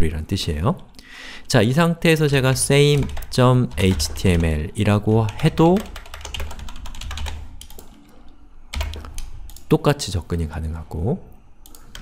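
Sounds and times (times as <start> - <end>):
computer keyboard typing: 2.3 - 9.7, 11.6 - 12.0.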